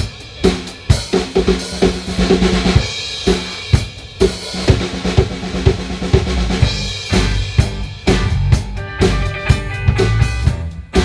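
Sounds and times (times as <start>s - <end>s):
bass guitar: 0.0s - 11.0s
drum kit beat: 0.0s - 11.0s
electric guitars: 6.6s - 11.0s.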